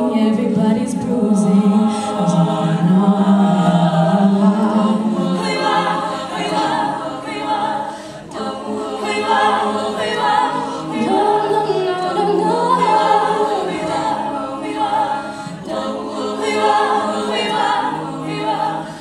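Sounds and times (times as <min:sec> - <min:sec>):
female choir singing harmonies: 0:00.0 - 0:19.0.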